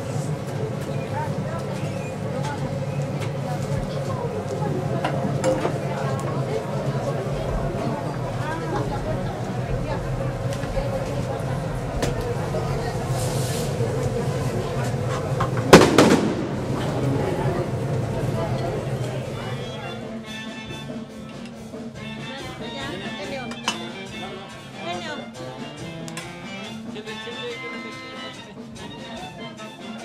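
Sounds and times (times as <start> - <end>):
background voices: 0.0 - 20.2
loud bangs: 15.5 - 17.4.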